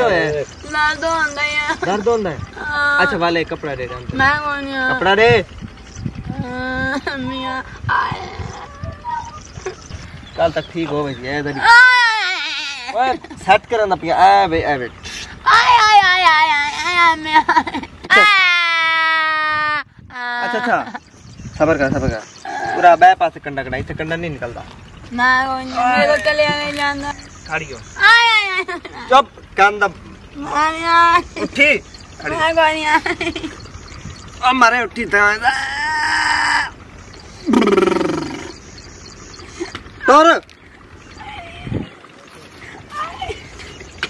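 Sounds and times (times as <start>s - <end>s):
woman wailing in pain: 35.4s - 36.8s.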